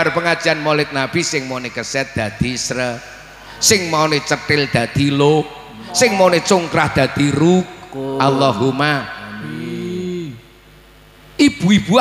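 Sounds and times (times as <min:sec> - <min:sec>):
faint background hum: 0:00.0 - 0:12.0
man singing long low note: 0:08.0 - 0:10.4.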